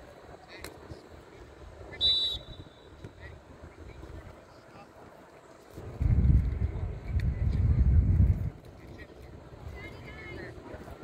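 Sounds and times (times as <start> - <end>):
faint distant voices: 0.0 - 11.0
referee's whistle blast: 2.0 - 3.0
wind rumble on microphone: 5.8 - 11.0.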